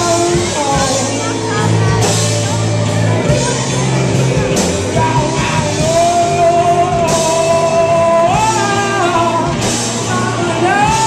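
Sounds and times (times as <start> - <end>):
drum kit: 0.0 - 11.0
guitars: 0.0 - 11.0
man singing long notes: 4.7 - 11.0.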